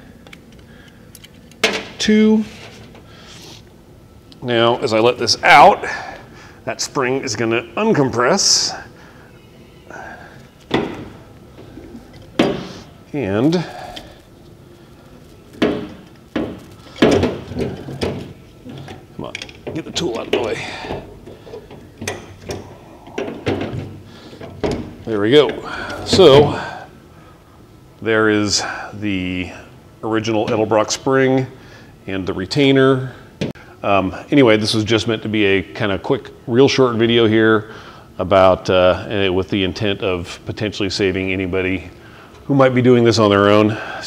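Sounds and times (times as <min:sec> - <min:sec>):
metal clanks and knocks: 0:15.6 - 0:26.7
person speaking: 0:19.2 - 0:21.0, 0:25.0 - 0:26.9.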